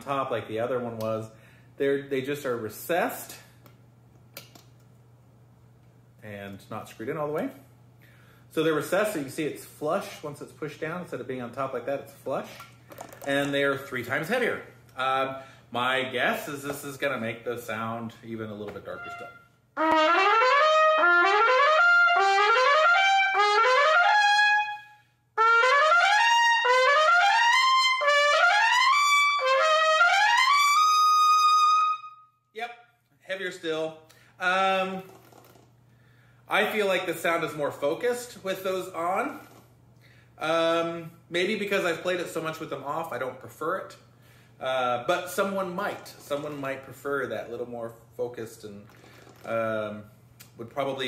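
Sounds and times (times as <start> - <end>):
faint steady hum: 0.0 - 19.8
trumpet playing rising runs: 18.9 - 32.3.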